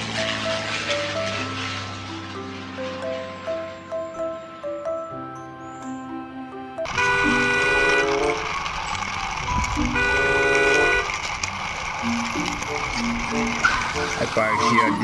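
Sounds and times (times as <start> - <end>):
horn-like toot: 6.9 - 8.5, 9.9 - 11.1
steady rumbling noise: 6.9 - 14.5.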